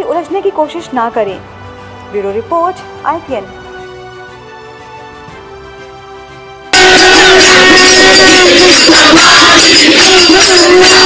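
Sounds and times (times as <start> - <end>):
quiet background music: 0.0 - 6.8
clanging ringing metal: 6.8 - 11.0
crowd noise: 6.8 - 11.0.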